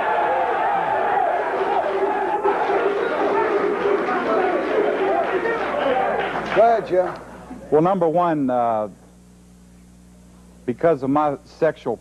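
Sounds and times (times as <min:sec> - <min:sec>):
overlapping voices talking: 0:00.0 - 0:07.6.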